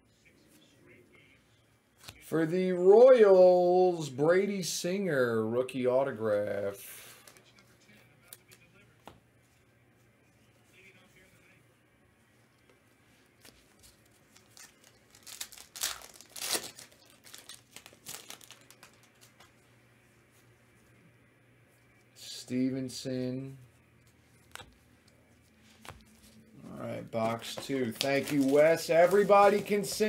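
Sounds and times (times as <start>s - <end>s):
wrapper tearing and rustling: 13.4s - 19.5s, 27.2s - 30.0s.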